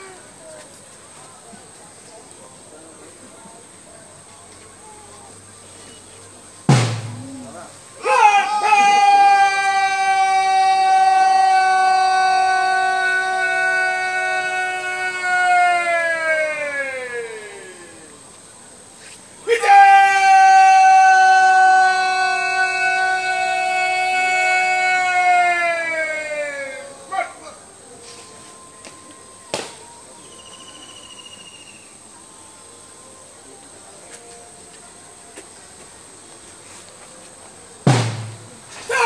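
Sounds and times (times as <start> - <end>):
insects chirping drone: 2.0 - 39.0.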